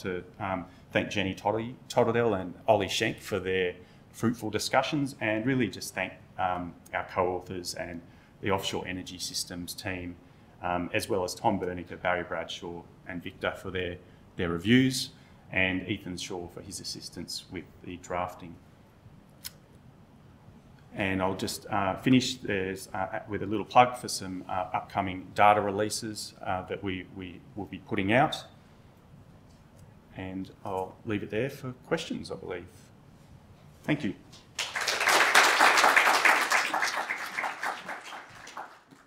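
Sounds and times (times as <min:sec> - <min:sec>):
faint room hum: 0:00.0 - 0:39.0
audience applauding: 0:34.6 - 0:39.0.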